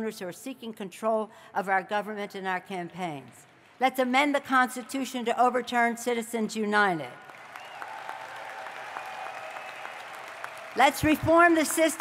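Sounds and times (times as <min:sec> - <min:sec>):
large audience applauding: 0:07.2 - 0:12.0.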